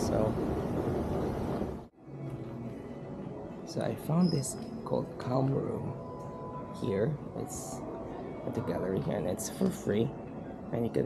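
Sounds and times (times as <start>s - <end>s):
large hall ambience: 0.0s - 11.0s.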